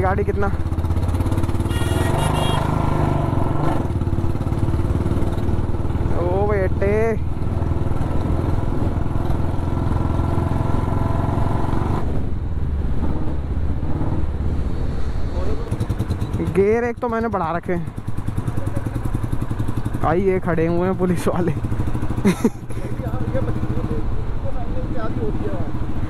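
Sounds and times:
motorcycle engine running: 0:00.0 - 0:11.5, 0:15.6 - 0:26.0.

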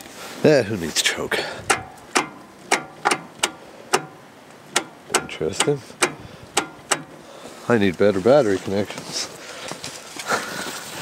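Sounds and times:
starter solenoid clicks: 0:01.6 - 0:07.2.

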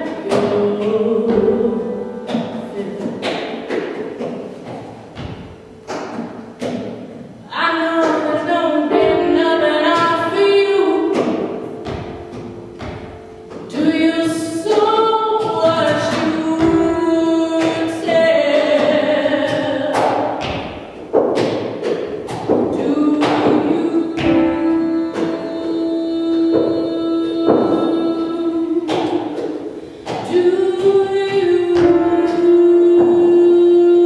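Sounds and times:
sharp thumps: 0:08.9 - 0:25.5
dull thuds: 0:11.1 - 0:13.8
person singing a long held note: 0:22.8 - 0:29.2, 0:30.3 - 0:34.0.

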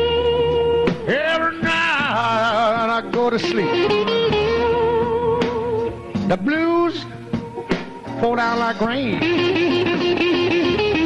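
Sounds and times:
bass line: 0:00.0 - 0:11.0
electric guitar long note: 0:03.4 - 0:05.9, 0:09.2 - 0:11.0.

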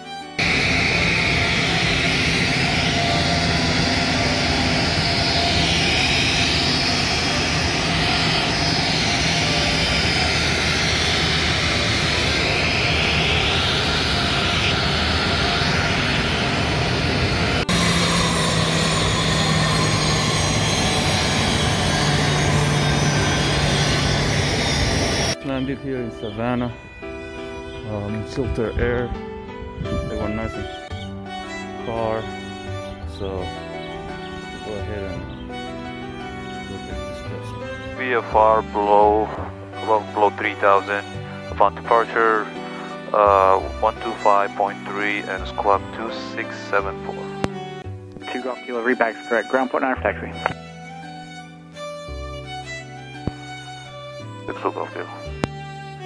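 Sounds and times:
aircraft engine rushing: 0:00.0 - 0:56.0
low hum: 0:00.4 - 0:25.4.

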